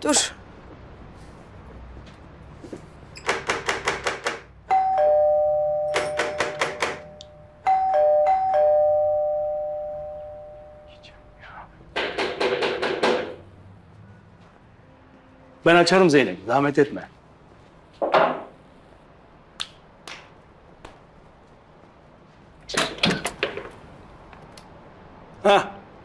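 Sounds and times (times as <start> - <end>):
ding-dong doorbell: 4.7 - 10.9
rapid knocking on door: 12.0 - 13.4.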